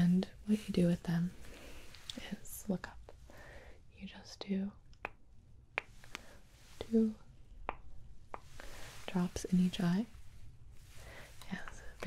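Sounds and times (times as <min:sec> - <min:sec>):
woman whispering: 0:02.1 - 0:03.1, 0:03.9 - 0:04.8, 0:11.4 - 0:12.0.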